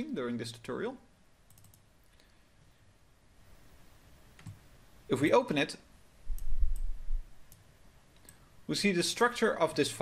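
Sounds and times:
computer mouse clicks: 1.5s - 1.9s, 4.4s - 4.6s, 6.3s - 8.4s.

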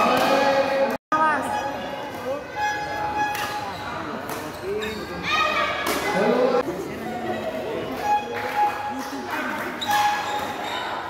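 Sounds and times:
voices talking and calling out: 1.2s - 11.0s.

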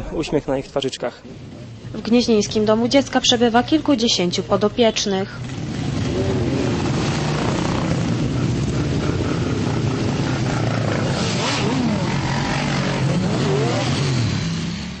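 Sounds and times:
motorcycle engines idling: 1.3s - 15.0s
motorcycle throttles revving: 4.8s - 15.0s.

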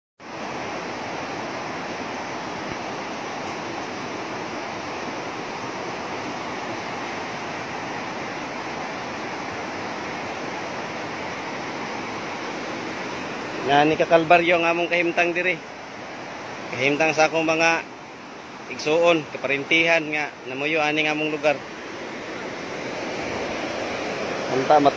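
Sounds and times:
river current rushing over rocks: 0.2s - 24.9s.

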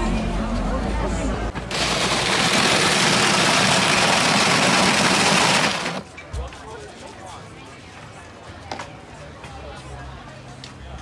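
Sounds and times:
electric ice shaver grinding: 1.7s - 6.0s.

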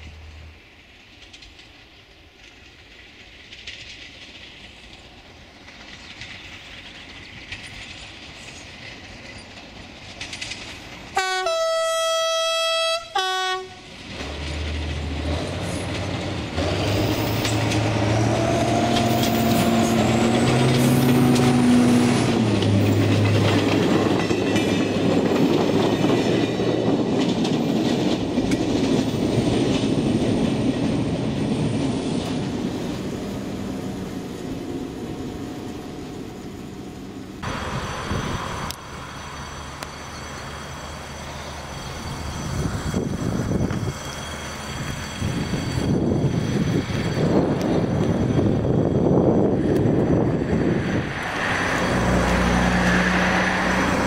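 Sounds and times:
diesel railcar engine passing: 0.0s - 54.0s
wheels clicking over rail joints: 0.6s - 11.6s, 13.8s - 32.9s
train horn: 11.2s - 13.9s.

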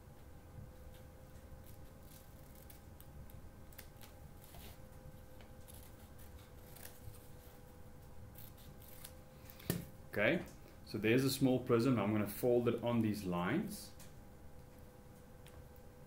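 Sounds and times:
scissors snipping paper: 1.6s - 4.6s, 5.6s - 7.3s, 8.4s - 9.2s.

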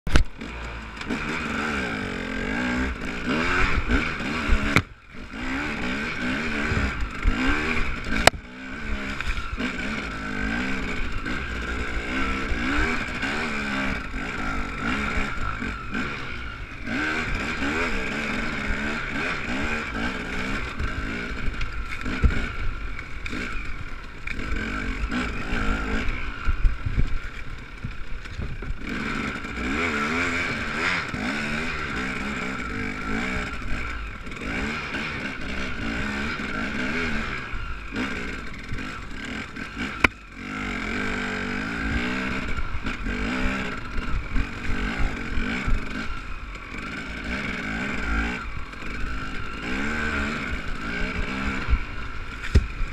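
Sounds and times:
dirt bike engine revving: 0.1s - 52.9s
knocks and clatter from bike: 20.4s - 30.2s, 51.2s - 52.9s.

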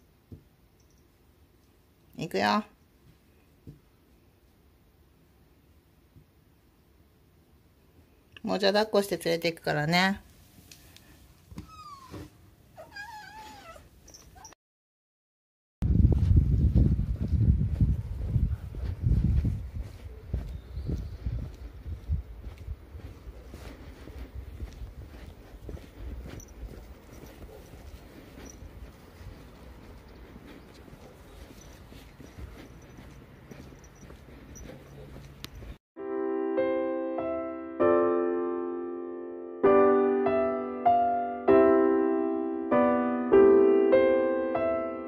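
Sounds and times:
kitten meowing: 11.6s - 12.2s, 12.8s - 14.5s
pet carrier bag rustling: 26.0s - 35.8s.

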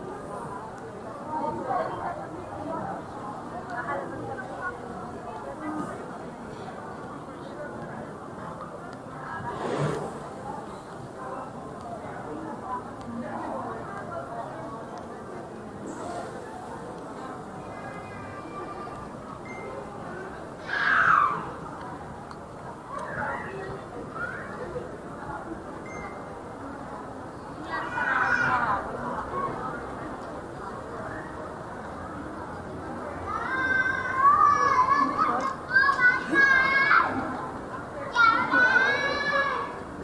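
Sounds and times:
distant crowd noise in hall: 0.0s - 40.0s.

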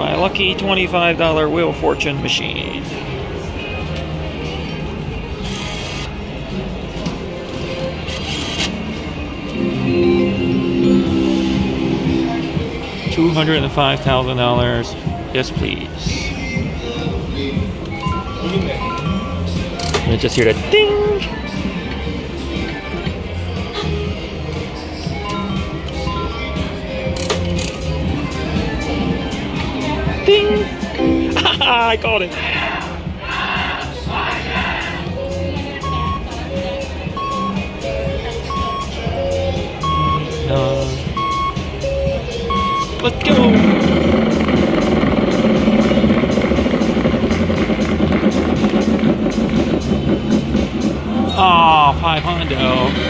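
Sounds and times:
casino background music: 0.0s - 53.0s
slot machine electronic tones: 9.5s - 13.4s, 30.2s - 32.1s, 35.8s - 45.8s
stepped beeps: 17.9s - 19.3s, 35.2s - 43.7s.

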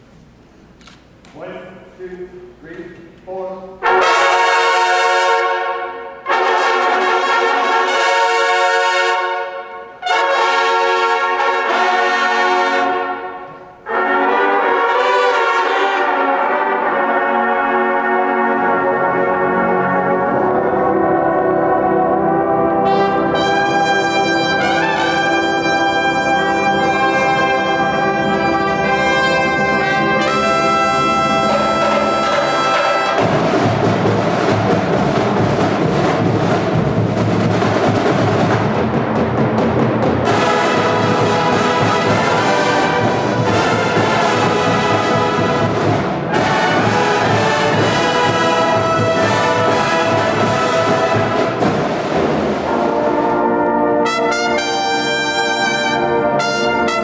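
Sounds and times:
bugles playing loud chords: 3.6s - 57.0s
cymbals and drums: 22.8s - 57.0s.

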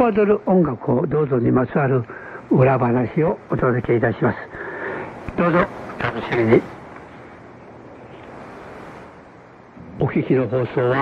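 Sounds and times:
shortwave radio static hiss: 0.0s - 11.0s.

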